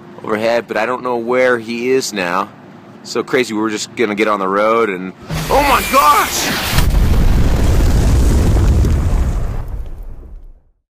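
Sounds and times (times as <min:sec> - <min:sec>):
deep explosion rumble: 0:05.2 - 0:10.7.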